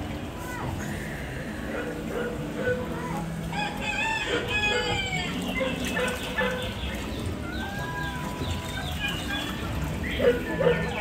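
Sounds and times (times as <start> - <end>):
rooster crowing: 3.5 - 5.3.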